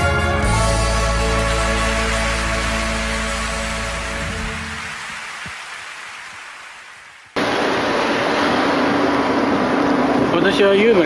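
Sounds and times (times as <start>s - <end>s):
song: 0.0s - 5.0s.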